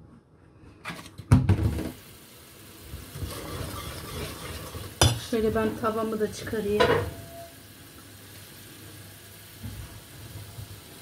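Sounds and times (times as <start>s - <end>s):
low kitchen hum: 0.0s - 11.0s.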